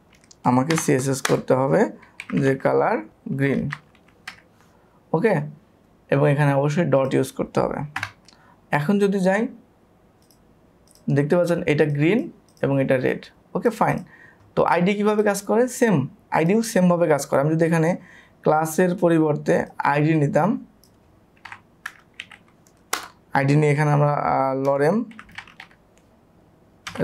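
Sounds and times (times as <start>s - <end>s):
computer mouse clicks: 10.2s - 11.1s, 20.8s - 23.2s.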